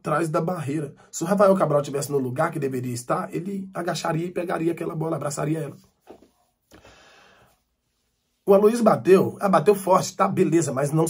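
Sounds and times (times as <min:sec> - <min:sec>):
faint soft hiss: 0:03.6 - 0:09.6.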